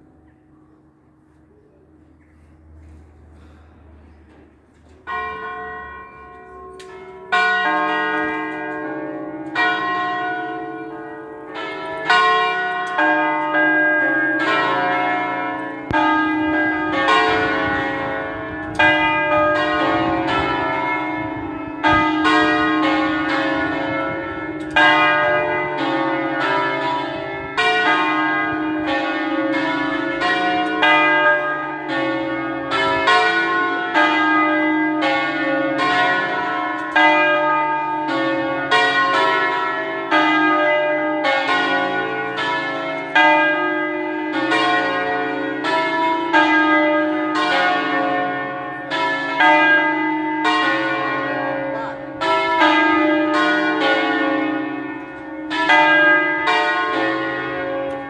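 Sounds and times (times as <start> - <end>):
church bells pealing: 0.0 - 2.0, 2.6 - 58.0.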